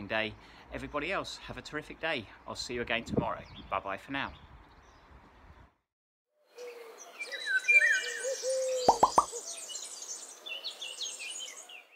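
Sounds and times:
birds chirping and trilling: 6.5 - 11.9.

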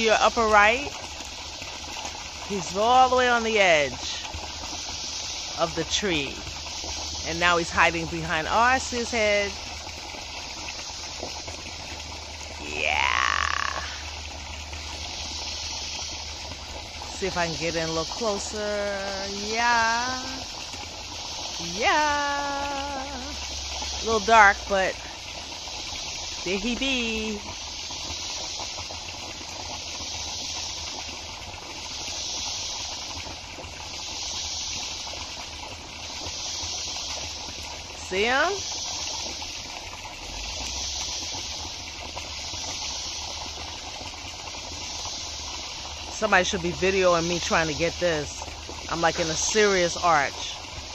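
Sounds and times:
flowing water rushing: 0.0 - 50.9
steady hiss: 0.0 - 50.9.

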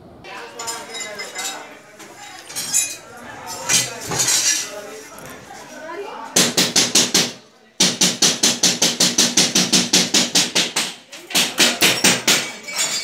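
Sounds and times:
rapid sharp knocking: 6.4 - 12.5.

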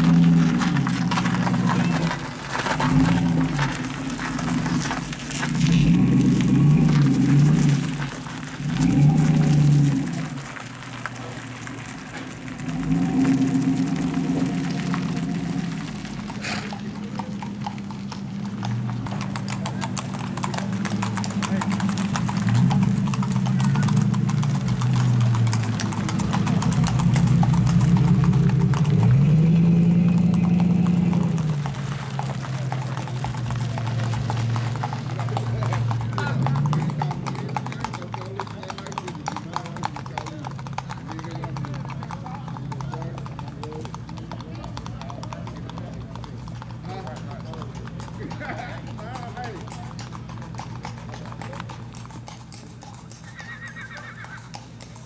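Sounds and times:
hooves clip-clopping on pavement: 0.0 - 55.0.

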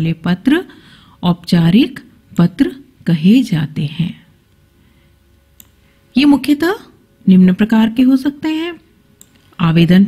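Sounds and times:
woman speaking: 0.0 - 4.4, 6.2 - 8.9, 9.6 - 10.0.

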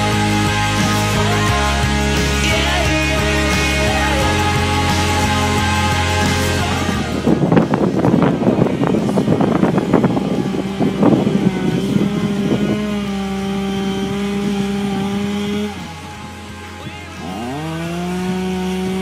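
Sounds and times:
chainsaw engine revving: 0.0 - 19.0
music track: 0.0 - 19.0.

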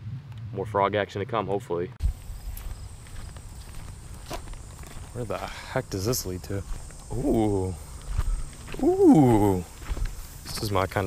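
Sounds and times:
footsteps on dirt path: 2.0 - 11.0.

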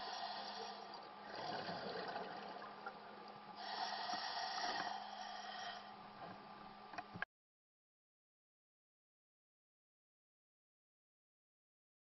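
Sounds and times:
diver breathing through regulator: 0.0 - 2.0, 3.6 - 6.0
faint hum: 0.0 - 7.3.

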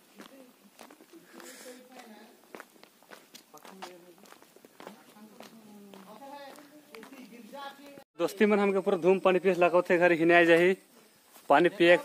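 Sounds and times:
footsteps walking: 0.0 - 8.0, 11.2 - 11.6
faint background voices: 0.2 - 2.6.

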